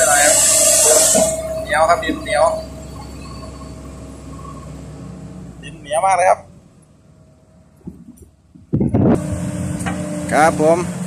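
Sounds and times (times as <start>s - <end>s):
excavator diesel engine digging: 0.0s - 11.0s
steady engine whine: 0.0s - 11.0s.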